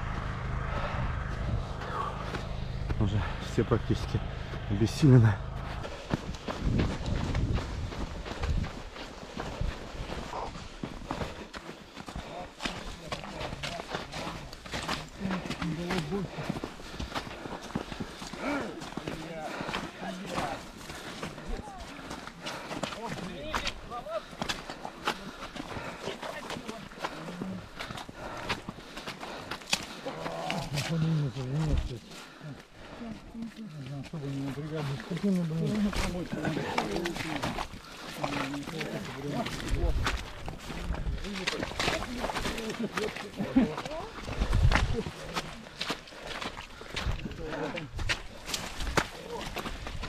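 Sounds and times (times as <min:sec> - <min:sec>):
heavy breathing: 0:00.0 - 0:23.3, 0:24.0 - 0:33.5, 0:35.9 - 0:43.2, 0:45.6 - 0:49.0
footsteps crunching in snow: 0:00.5 - 0:31.9, 0:33.7 - 0:50.0.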